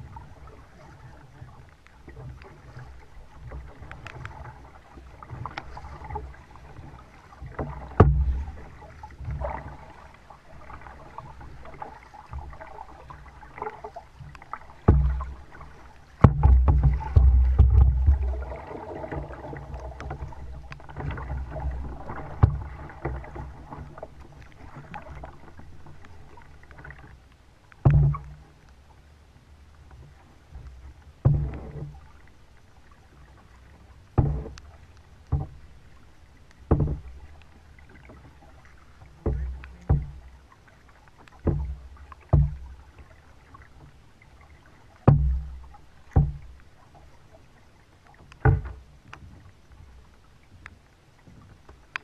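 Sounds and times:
paddle splashing in water: 0:00.0 - 0:29.1, 0:29.7 - 0:52.0
sharp knocks: 0:16.2 - 0:18.3, 0:46.1 - 0:46.4.

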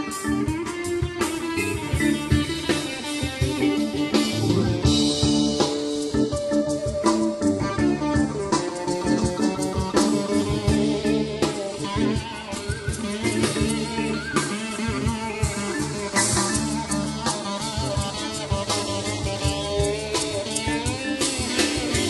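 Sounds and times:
drum kit beat: 0:00.0 - 0:22.0
guitar: 0:00.0 - 0:22.0.

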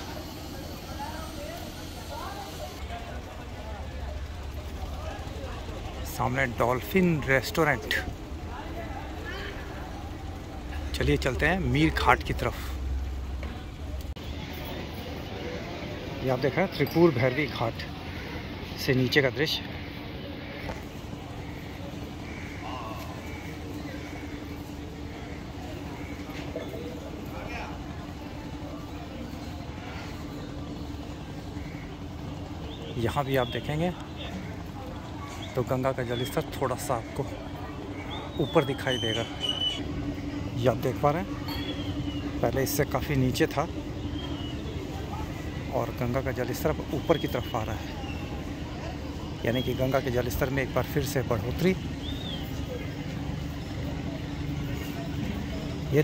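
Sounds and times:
low engine hum: 0:00.0 - 0:18.8
faint distant voices: 0:00.0 - 0:56.0
outdoor noise: 0:00.0 - 0:56.0
steady low motor hum: 0:00.0 - 0:56.0
faint high chirp: 0:41.4 - 0:42.5.

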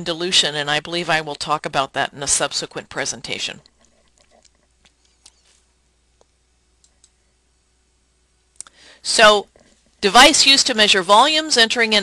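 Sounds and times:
computer mouse clicks: 0:06.2 - 0:07.2.

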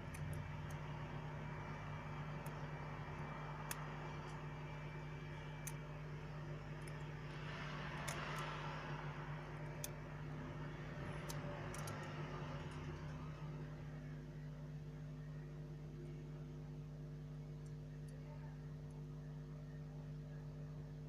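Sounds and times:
low machine hum with hiss: 0:00.0 - 0:21.0
metal tweezers clicking: 0:11.2 - 0:13.1.

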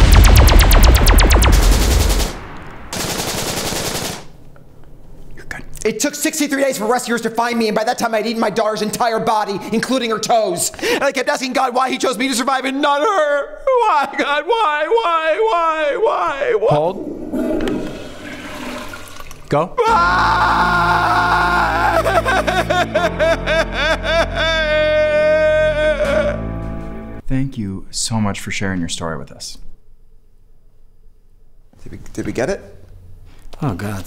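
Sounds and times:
deep rumble: 0:00.0 - 0:03.0
toilet flushing: 0:17.0 - 0:19.7.

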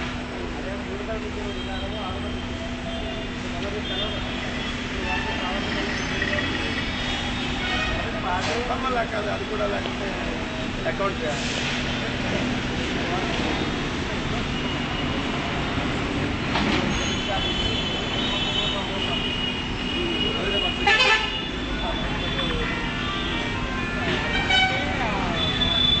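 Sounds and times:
street traffic: 0:00.0 - 0:26.0
vehicle horns tooting: 0:01.5 - 0:08.2, 0:16.9 - 0:26.0.

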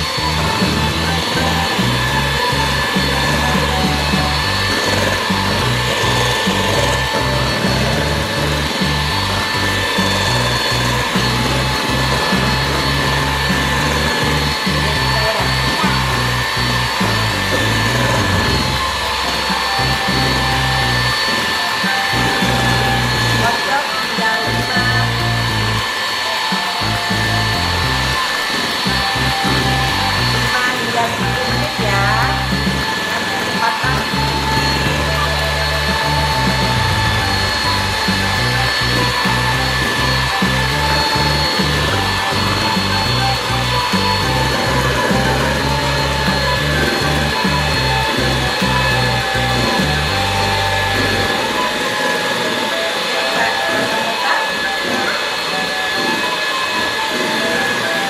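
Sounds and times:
background music: 0:00.0 - 0:58.0
electric hand mixer whining: 0:00.0 - 0:58.0.

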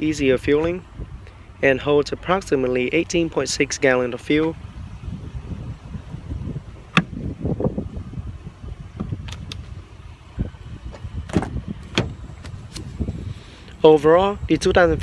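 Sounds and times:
plastic fuel door clicking shut: 0:11.3 - 0:12.2.

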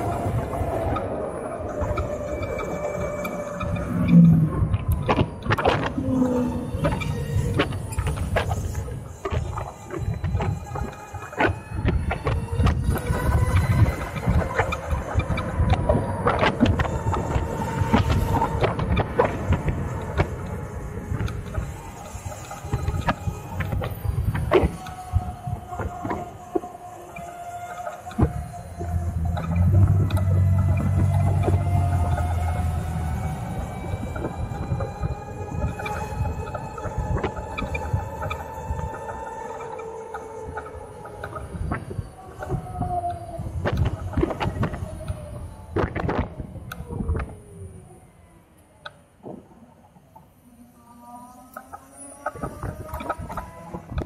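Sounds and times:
wind rumble on microphone: 0:00.0 - 0:54.0
electric motorcycle motor whine: 0:02.0 - 0:47.8.

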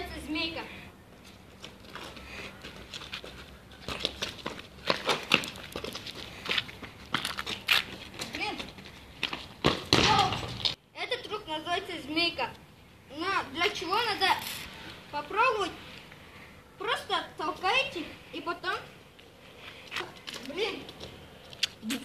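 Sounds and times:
football being kicked: 0:09.6 - 0:10.7.

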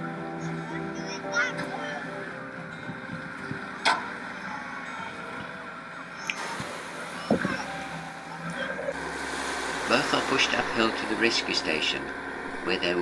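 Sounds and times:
diesel engine running: 0:00.0 - 0:13.0.

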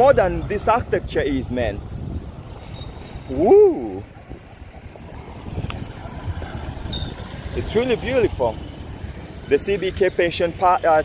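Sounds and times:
wind buffeting microphone: 0:00.0 - 0:09.4
road traffic: 0:00.0 - 0:11.0.

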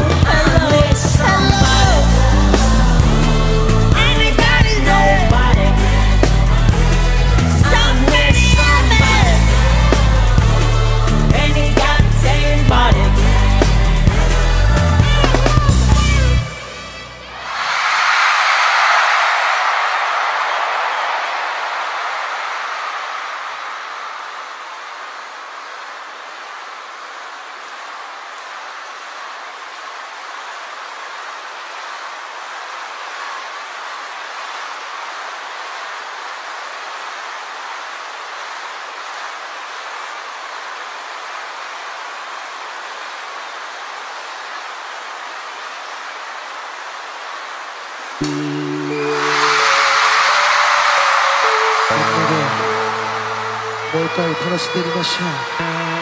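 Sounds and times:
crowd cheering: 0:00.0 - 0:56.0.

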